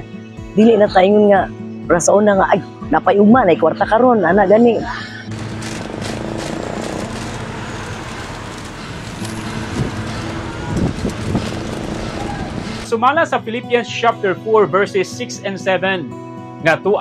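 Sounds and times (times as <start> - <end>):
road traffic hum: 5.2 - 12.9.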